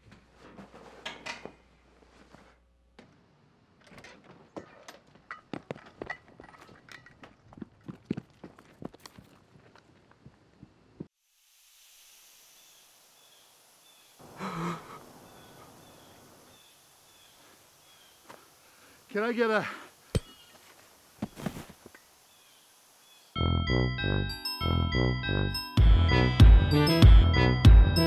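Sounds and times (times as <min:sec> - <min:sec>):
steady hiss: 0:11.1 - 0:23.4.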